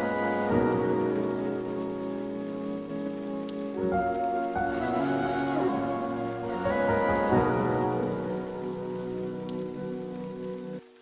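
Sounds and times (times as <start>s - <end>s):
rain: 0.0s - 11.0s.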